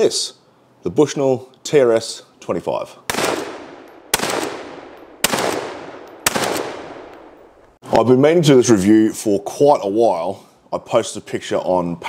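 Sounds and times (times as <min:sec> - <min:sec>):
gunshots with echo: 0:03.1 - 0:07.5.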